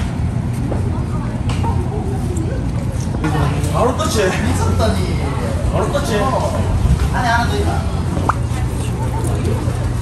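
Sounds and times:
faint murmur of voices: 0.0s - 10.0s
steady low rumble: 6.4s - 10.0s.

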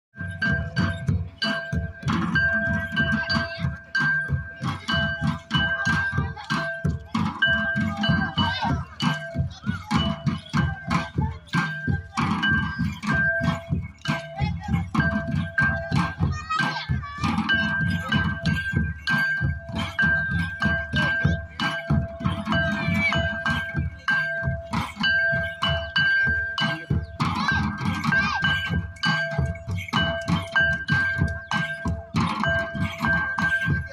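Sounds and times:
barrel drums beating quick rhythm: 0.2s - 33.9s.

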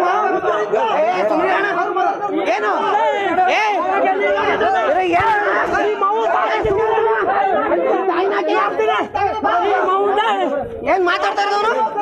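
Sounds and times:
men arguing and shouting: 0.0s - 12.0s.

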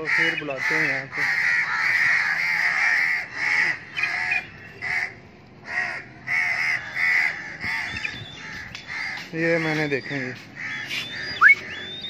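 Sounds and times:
crows cawing: 0.0s - 11.8s.

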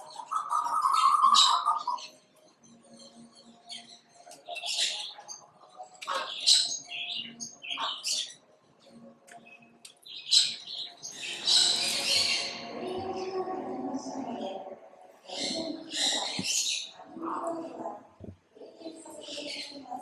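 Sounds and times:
birds chirping and squawking: 0.0s - 2.2s, 2.8s - 8.4s, 9.3s - 20.0s.

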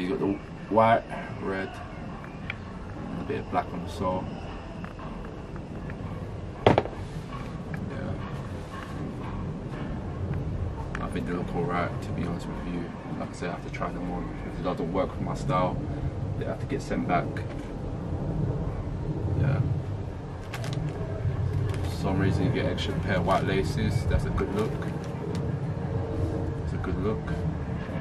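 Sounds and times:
wind buffeting microphone: 0.0s - 28.0s
shoe knocking on cardboard box: 6.7s - 7.0s.

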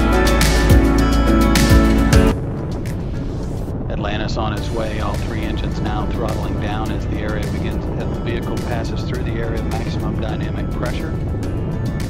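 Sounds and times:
background music: 0.0s - 12.0s
low rumble of rocket engines: 2.3s - 12.0s
voices: 3.9s - 11.2s.

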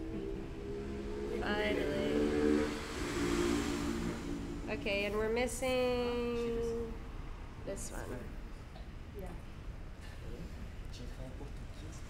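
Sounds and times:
low voices: 0.0s - 2.8s.

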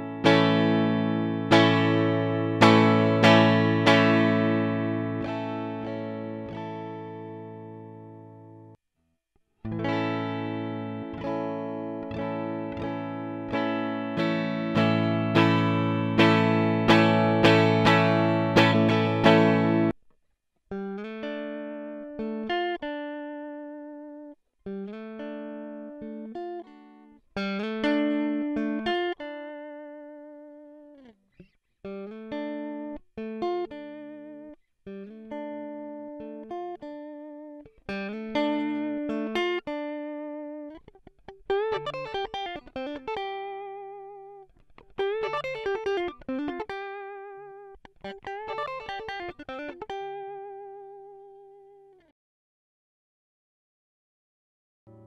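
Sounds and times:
clean electric guitar notes: 0.0s - 8.7s, 9.7s - 20.0s.

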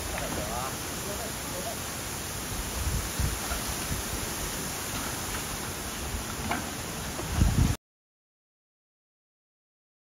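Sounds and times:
bamboo leaves rustling: 0.0s - 7.8s
rushing wind: 0.0s - 7.8s.

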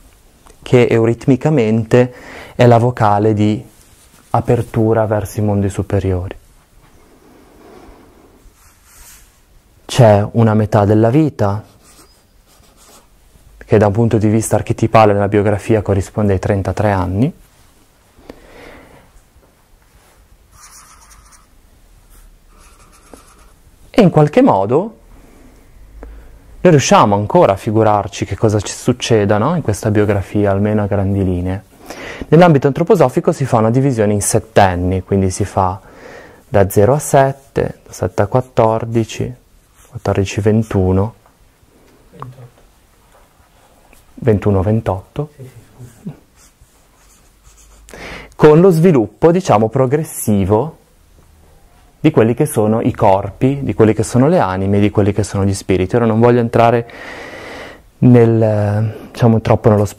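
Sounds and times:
scratching strokes on board: 20.5s - 21.6s, 22.5s - 23.6s, 46.3s - 47.9s.

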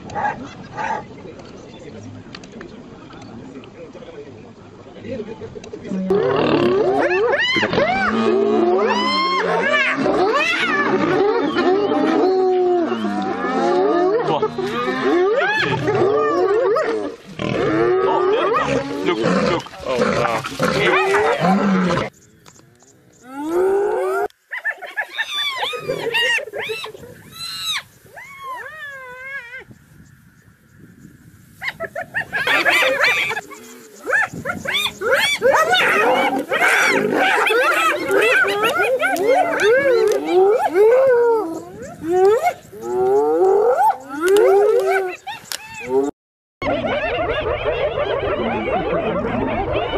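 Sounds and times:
lion calling: 5.9s - 22.1s, 23.2s - 29.7s, 31.6s - 46.1s
hyenas calling: 5.9s - 22.2s, 23.1s - 29.7s, 31.6s - 49.9s.

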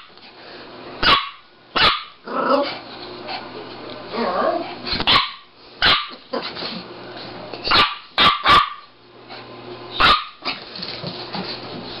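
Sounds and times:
small dogs barking: 1.0s - 2.2s, 5.0s - 6.5s, 7.6s - 9.0s, 9.9s - 10.6s.

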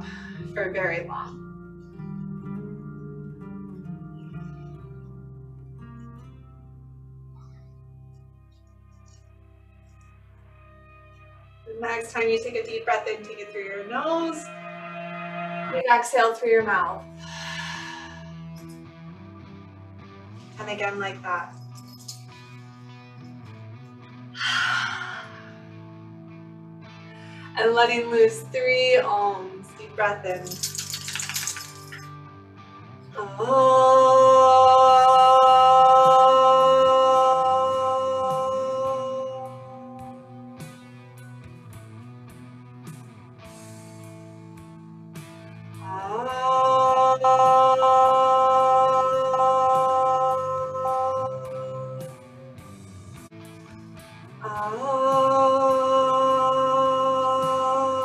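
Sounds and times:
slow guitar music: 0.0s - 58.0s
woman chanting: 11.7s - 14.8s, 15.6s - 17.0s, 33.2s - 40.3s, 45.8s - 52.1s, 54.4s - 58.0s
exhale through the mouth: 17.2s - 18.4s, 24.4s - 25.6s.

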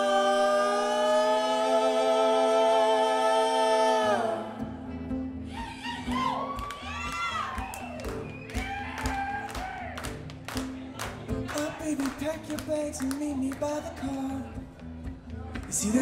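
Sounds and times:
many-voiced sung chord: 0.0s - 5.1s
audience cheering and whooping: 5.5s - 10.2s.

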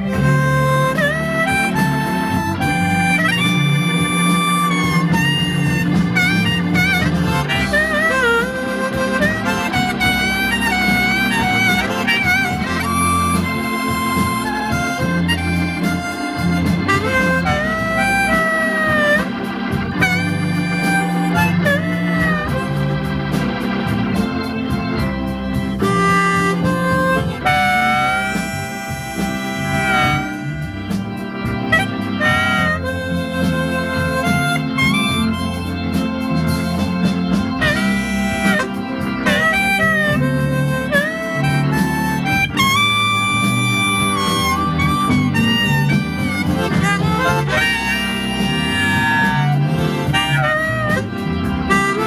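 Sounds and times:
band accompaniment with guitar: 0.0s - 52.0s
harmonica solo: 0.0s - 52.0s.

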